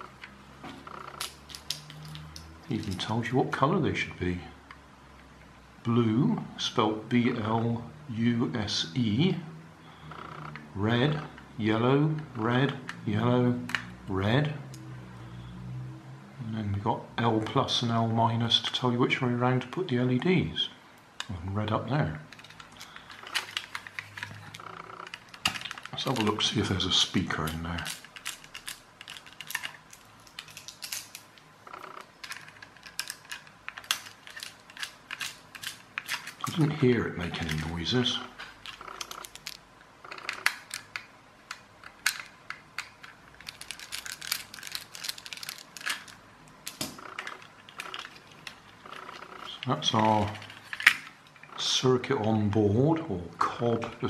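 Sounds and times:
clicks handling plastic toy car: 22.3s - 26.5s, 27.4s - 31.3s, 32.2s - 36.6s, 40.2s - 48.7s, 50.0s - 51.2s
screwdriver clicking on screws: 32.2s - 36.5s.

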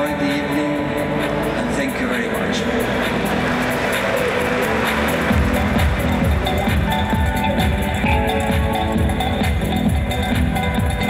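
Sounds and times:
live band music: 0.0s - 11.0s
bass drum beat: 4.8s - 11.0s.

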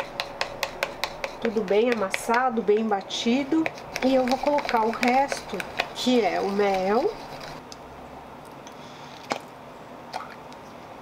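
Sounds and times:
metal spoon and plastic pots clicking: 2.0s - 6.1s.

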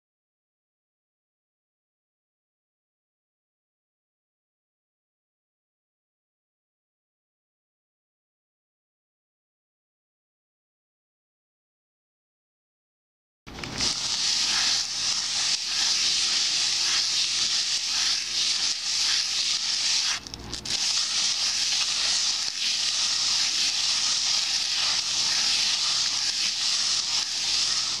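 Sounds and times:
abrasive scrubbing cast iron skillet: 13.7s - 28.0s.

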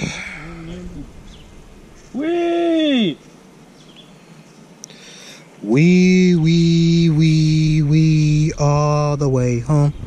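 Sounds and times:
man chanting held notes: 5.6s - 10.0s.

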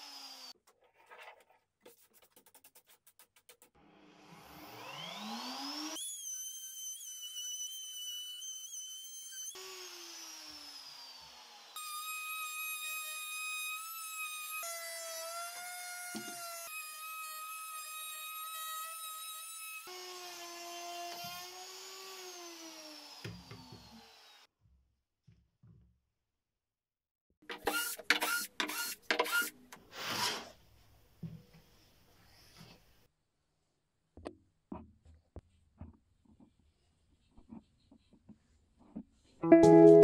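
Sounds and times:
electric router motor whine: 0.0s - 0.5s, 4.3s - 14.6s.

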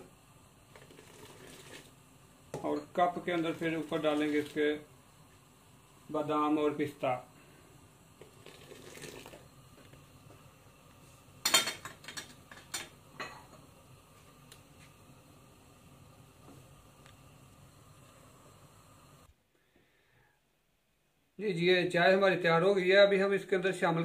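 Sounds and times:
faint hiss: 0.0s - 24.0s.

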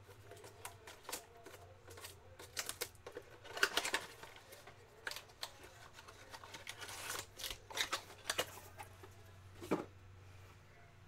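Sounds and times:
plastic shrink wrap crinkling: 0.0s - 9.1s.

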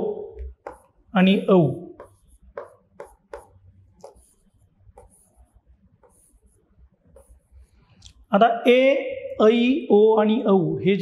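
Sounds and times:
marker pen scratching on board: 0.4s - 8.0s.

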